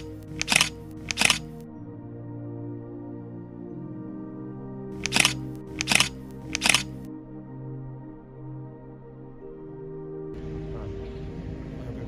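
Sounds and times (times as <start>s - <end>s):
camera shutter clicks: 0.0s - 1.6s, 5.0s - 7.0s
background music sustained tones: 0.0s - 12.0s.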